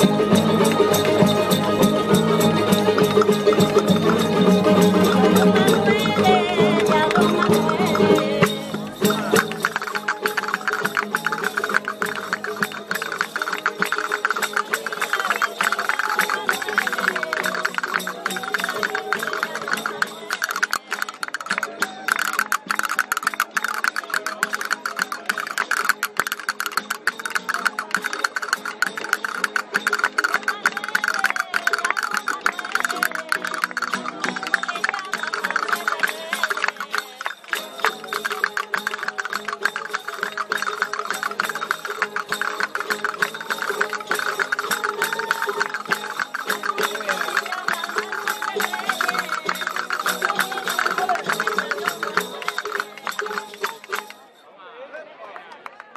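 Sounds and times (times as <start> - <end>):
strummed guitars: 0.0 - 54.3
castanets clicking: 9.3 - 54.1.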